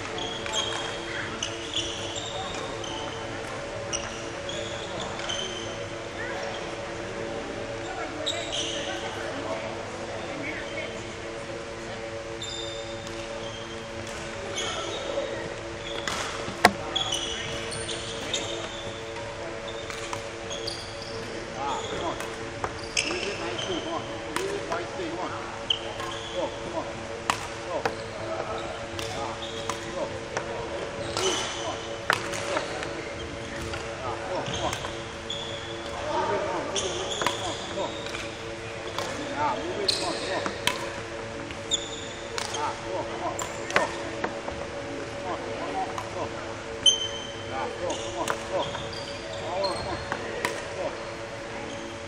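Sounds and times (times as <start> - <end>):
shoes squeaking on court: 15.8 - 21.2, 47.9 - 52.0
footsteps on wooden floor: 16.5 - 16.9.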